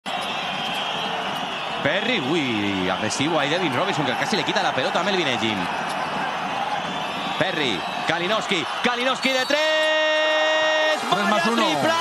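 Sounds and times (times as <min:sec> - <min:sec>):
crowd noise: 0:00.0 - 0:12.0
commentator speaking: 0:07.4 - 0:12.0.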